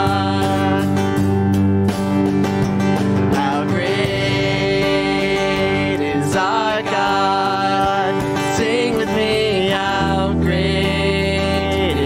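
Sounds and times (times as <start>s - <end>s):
person singing: 0.0s - 1.2s, 3.3s - 12.0s
drum kit playing: 0.0s - 12.0s
strummed guitar: 0.0s - 12.0s.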